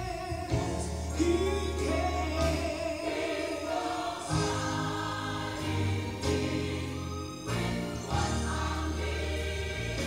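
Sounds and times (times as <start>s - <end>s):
gospel choir singing: 0.0s - 10.0s.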